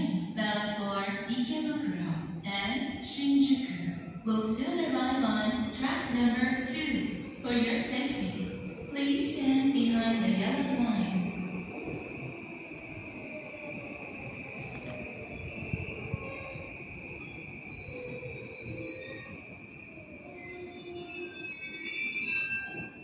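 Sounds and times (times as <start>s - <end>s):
woman's voice: 0.0s - 11.4s.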